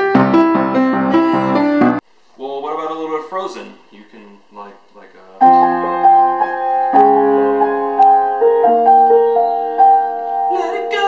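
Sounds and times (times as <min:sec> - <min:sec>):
piano chords: 0:00.0 - 0:02.0, 0:05.4 - 0:11.0
person speaking: 0:02.4 - 0:06.8.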